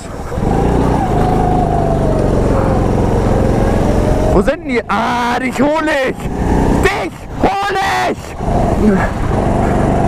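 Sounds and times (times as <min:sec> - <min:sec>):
go-kart engine at high revs: 0:00.0 - 0:10.0.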